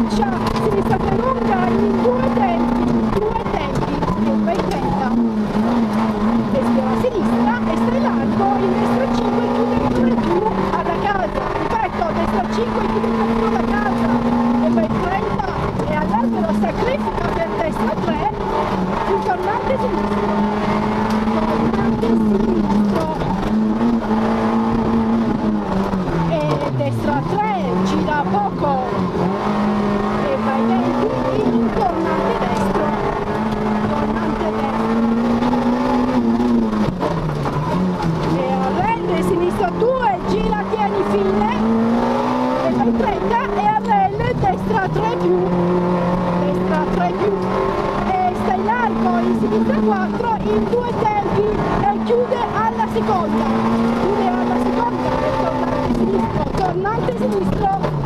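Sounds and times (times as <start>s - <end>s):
rally car engine running hard: 0.0s - 58.0s.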